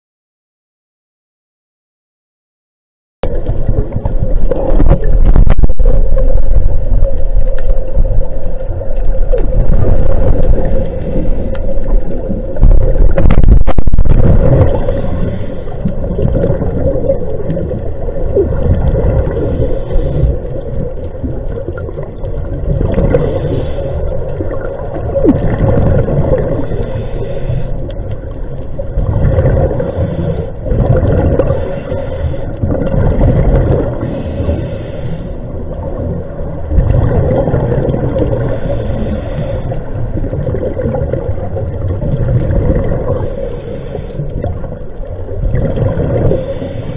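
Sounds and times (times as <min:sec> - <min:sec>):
mid-pitched hum: 0:03.2 - 0:40.4
underwater low rumble: 0:03.2 - 0:46.9.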